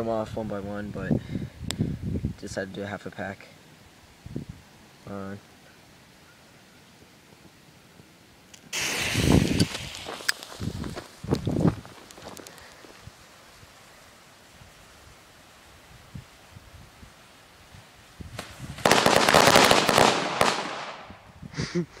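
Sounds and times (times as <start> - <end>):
firecrackers going off: 8.7 - 11.2, 18.4 - 21.1.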